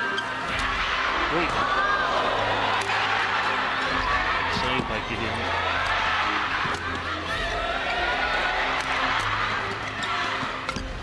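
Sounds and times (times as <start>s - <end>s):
players' voices: 0.3s - 10.8s.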